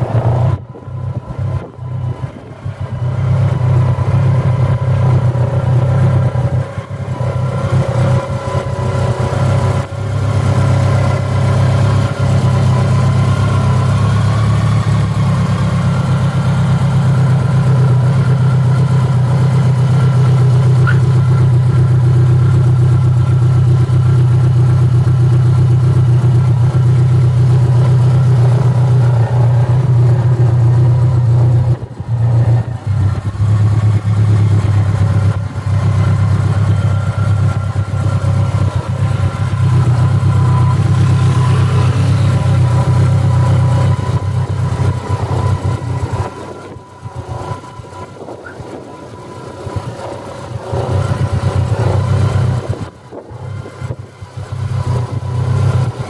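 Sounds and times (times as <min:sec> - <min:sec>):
motorcycle engine idling: 0:00.0 - 0:56.0.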